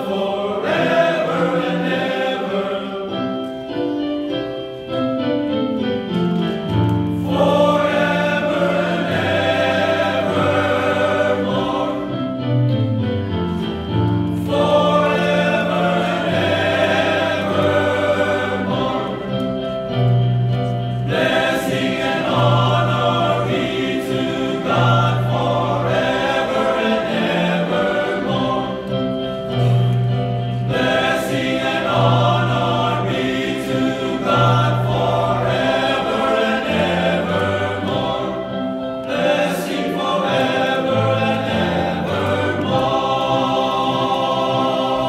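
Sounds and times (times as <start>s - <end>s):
men's choir singing: 0.0s - 4.0s, 6.4s - 45.0s.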